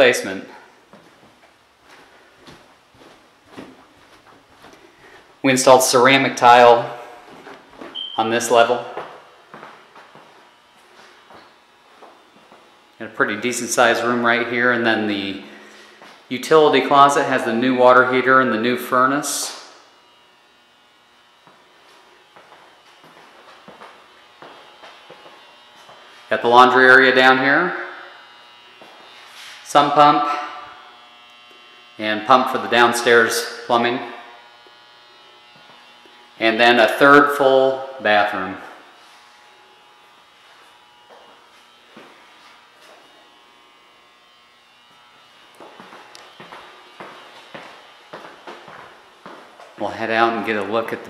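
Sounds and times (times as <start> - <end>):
steady electric motor buzz: 0.0 - 51.0
soft footsteps on tile floor: 0.8 - 5.4, 7.2 - 8.0, 8.9 - 12.7, 21.4 - 26.1, 40.4 - 43.1, 45.5 - 49.8.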